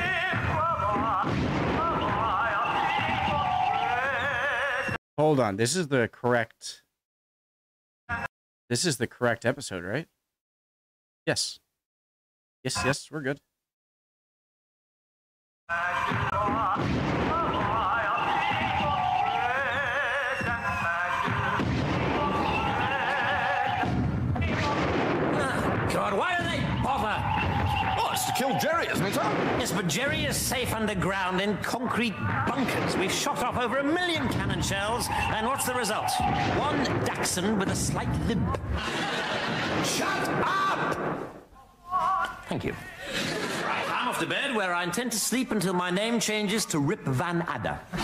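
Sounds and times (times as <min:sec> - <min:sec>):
operatic singing with vibrato: 0:00.0 - 0:05.0, 0:15.7 - 0:38.3
man's voice: 0:15.7 - 0:38.7, 0:43.8 - 0:48.0
low thuds and rumble: 0:23.8 - 0:28.0.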